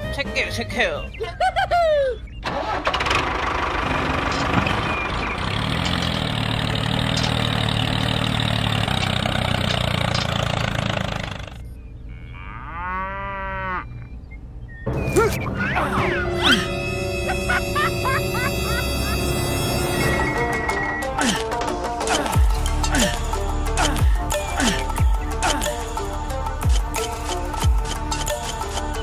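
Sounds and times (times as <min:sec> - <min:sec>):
tractor engine running: 0:02.4 - 0:11.8.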